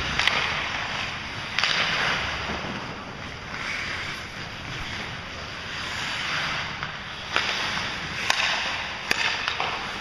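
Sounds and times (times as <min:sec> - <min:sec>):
skate blades scraping ice: 0:00.0 - 0:10.0
stick hitting puck: 0:00.0 - 0:10.0.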